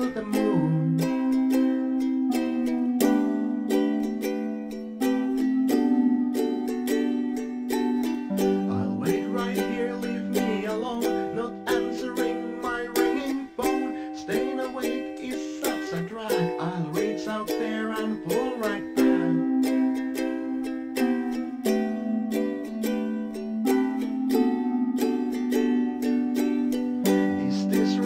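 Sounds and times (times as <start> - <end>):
ukulele strumming: 0.0 - 28.0.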